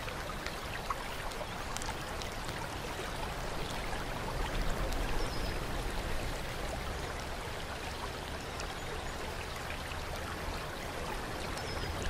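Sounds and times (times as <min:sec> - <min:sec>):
water drips: 0:00.0 - 0:12.0
water trickling into pool: 0:00.0 - 0:12.0.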